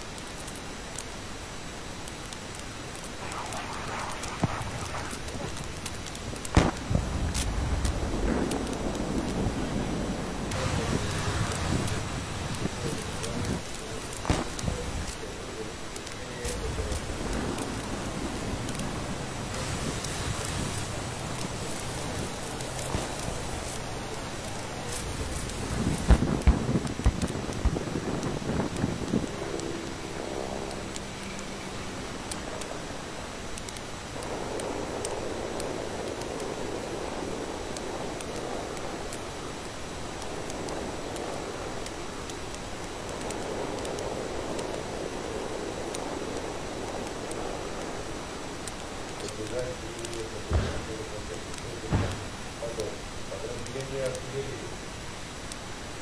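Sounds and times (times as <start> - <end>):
steady rushing rumble: 1.3 - 53.3
weapons fire blasts: 3.1 - 7.3, 14.2 - 15.1, 51.8 - 52.6.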